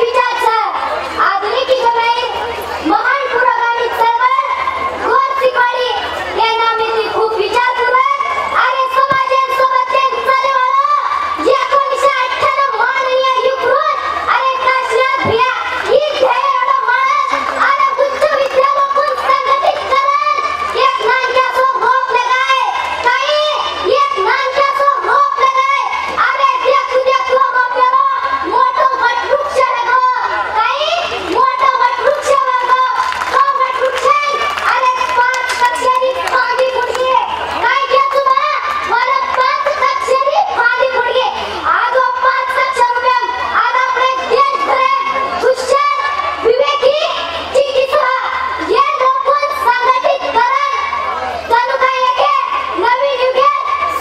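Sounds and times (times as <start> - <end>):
girl declaiming into a microphone: 0.0 - 54.0.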